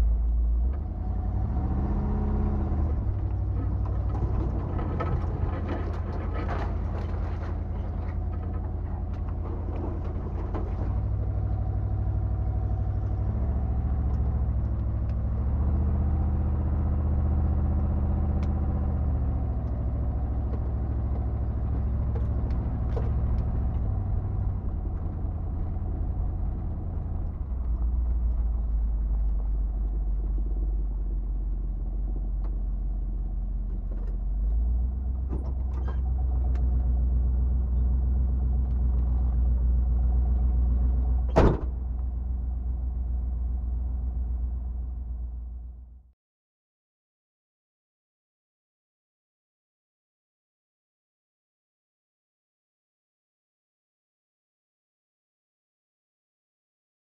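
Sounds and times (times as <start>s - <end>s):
car engine running: 0.0s - 46.0s.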